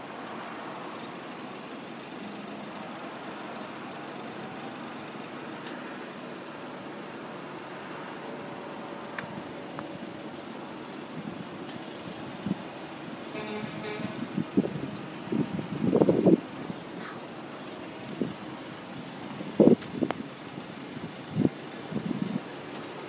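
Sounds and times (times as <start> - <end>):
vehicles idling in queue: 0.0 - 23.0.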